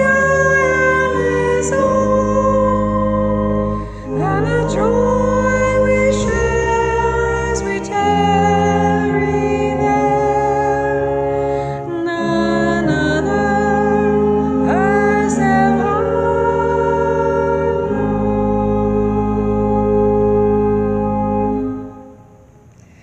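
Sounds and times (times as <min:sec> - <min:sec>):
small group singing a hymn: 0:00.0 - 0:11.2, 0:11.9 - 0:19.0
pipe organ: 0:00.0 - 0:22.9.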